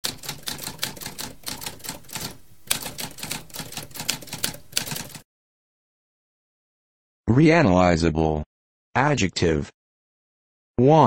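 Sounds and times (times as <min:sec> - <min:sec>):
typewriter keys striking: 0:00.0 - 0:05.2.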